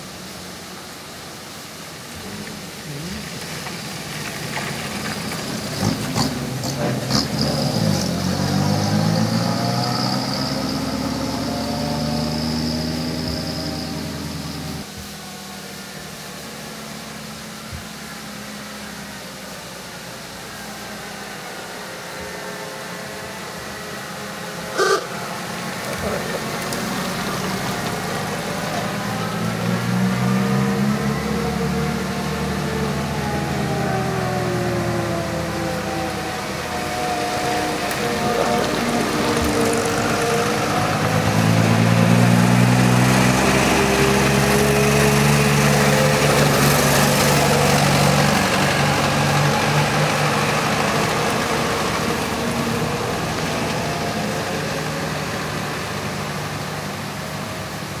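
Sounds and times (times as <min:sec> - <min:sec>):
old cars driving past: 0:01.8 - 0:15.0, 0:18.2 - 0:58.0.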